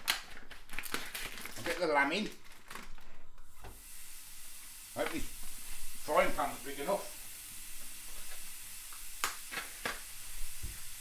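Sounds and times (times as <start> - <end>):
meat sizzling: 3.6 - 11.0.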